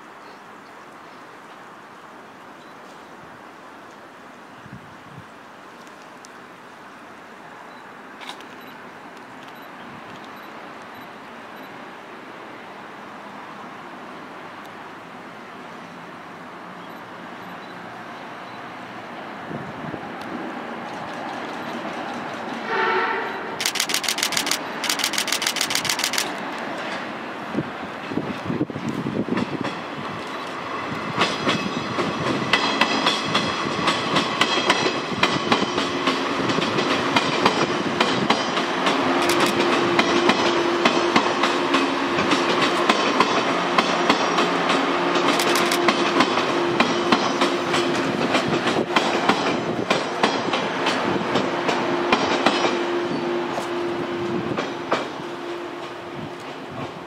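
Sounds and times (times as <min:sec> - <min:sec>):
train hum: 0:00.0 - 0:57.0
train wheels clickety-clack: 0:20.9 - 0:27.1, 0:28.0 - 0:52.9, 0:53.5 - 0:57.0.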